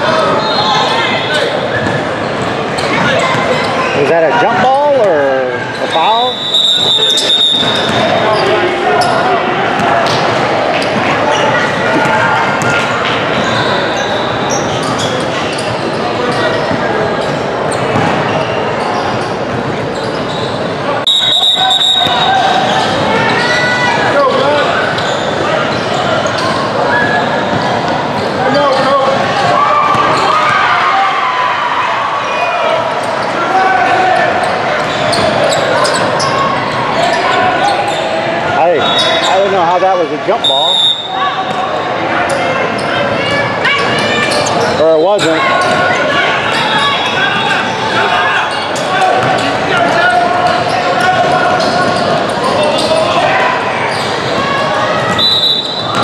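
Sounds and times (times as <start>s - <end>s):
voices chattering in echoing hall: 0.0s - 56.0s.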